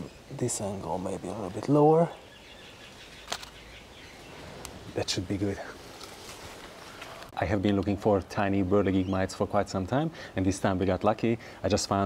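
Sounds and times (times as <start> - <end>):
sharp click: 3.2 - 3.6.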